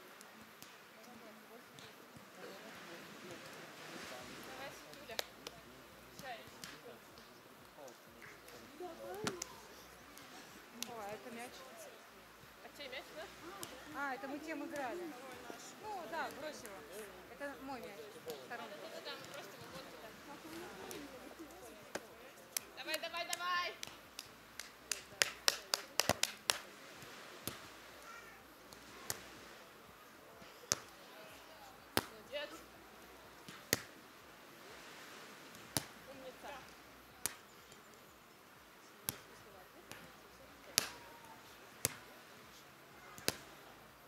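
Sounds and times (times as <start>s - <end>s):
hands slapping volleyball: 4.9s - 11.3s, 13.5s - 14.0s, 18.2s - 27.7s, 28.7s - 29.3s, 30.6s - 31.0s, 31.9s - 32.3s, 33.4s - 34.0s, 35.5s - 36.0s, 37.2s - 37.9s, 39.0s - 41.2s, 41.8s - 42.2s, 43.2s - 43.5s.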